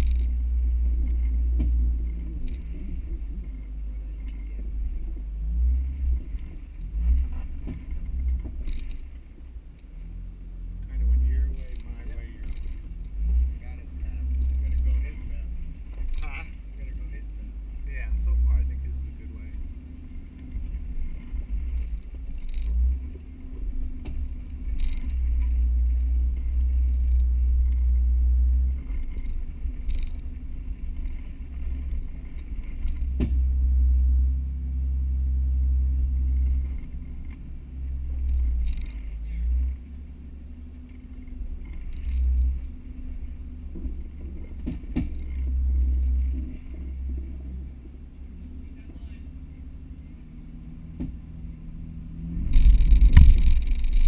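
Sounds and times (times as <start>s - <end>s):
low engine rumble: 0.0s - 54.0s
knocks and clunks from rocks: 7.1s - 9.1s, 43.8s - 45.4s, 52.5s - 54.0s.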